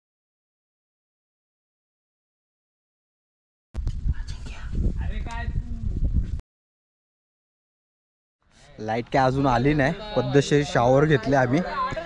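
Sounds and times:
person whispering: 4.1s - 4.9s.

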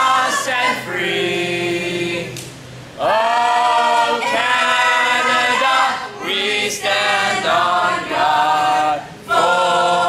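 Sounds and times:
group singing an anthem: 0.0s - 2.4s, 3.0s - 10.0s.

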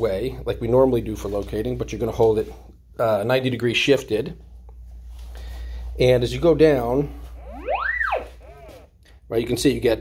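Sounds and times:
gliding electronic signal tone: 7.3s - 8.9s.

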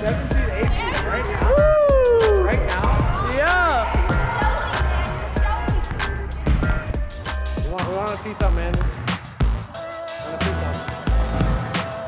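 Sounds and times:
heavy bass beat: 0.0s - 9.8s, 10.4s - 12.0s.

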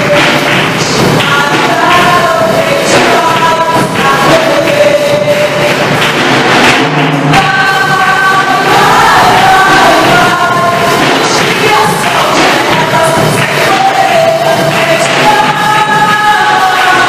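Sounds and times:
voices singing worship music: 0.0s - 17.0s.

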